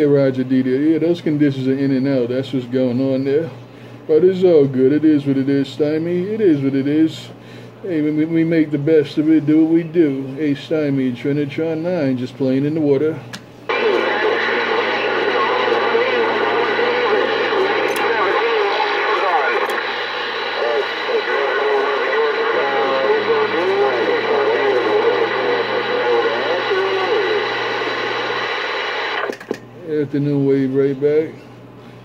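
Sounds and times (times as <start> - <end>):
garbled radio voice: 13.7 - 29.3
loud radio static: 13.7 - 29.6.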